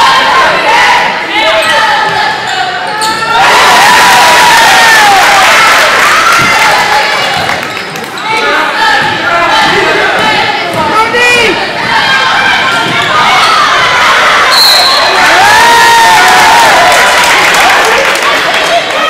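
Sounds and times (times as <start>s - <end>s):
crowd noise and shouting: 0.0s - 19.0s
basketball bouncing on wooden court: 8.9s - 11.0s
high whistle: 14.5s - 15.2s.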